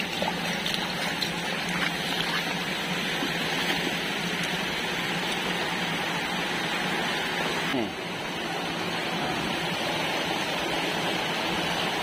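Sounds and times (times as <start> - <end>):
low even hum: 0.0 - 12.0
running water rushing: 0.0 - 12.0.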